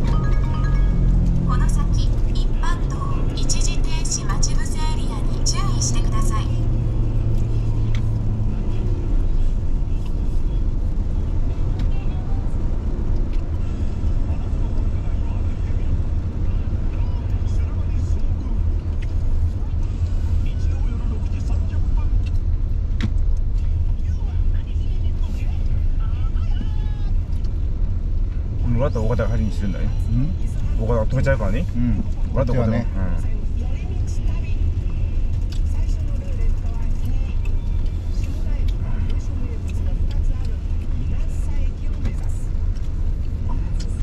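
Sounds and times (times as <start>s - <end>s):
car engine and tyres rumbling: 0.0s - 44.0s.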